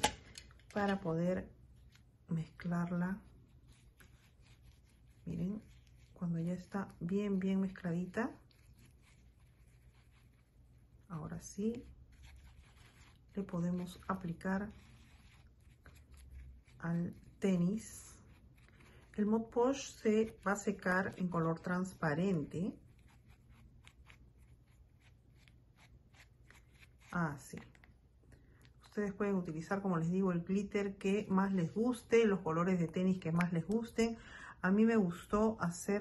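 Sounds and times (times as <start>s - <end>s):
paintbrush scratching in plastic tub: 1.6s - 27.9s.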